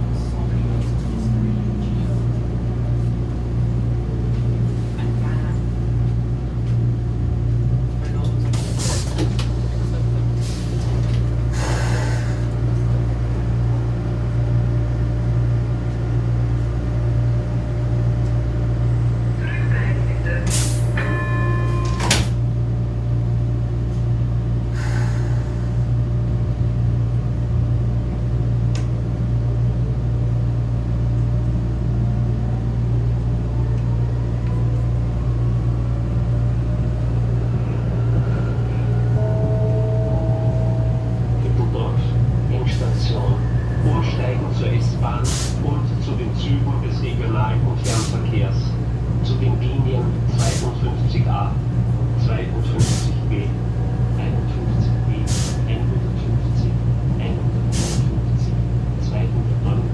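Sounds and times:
train whine pulling away: 0.0s - 59.6s
metro train hum: 0.0s - 59.9s
train doors closing clunks: 8.1s - 9.7s, 20.4s - 22.6s.

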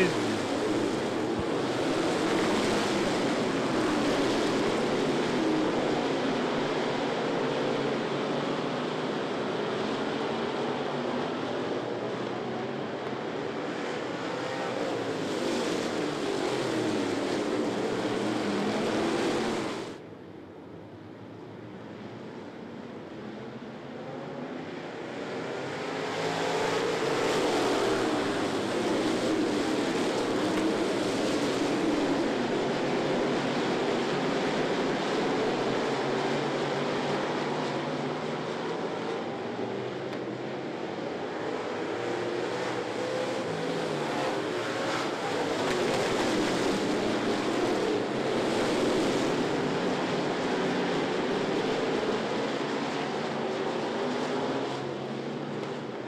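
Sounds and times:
race car engines passing: 0.0s - 20.0s, 23.0s - 56.0s.

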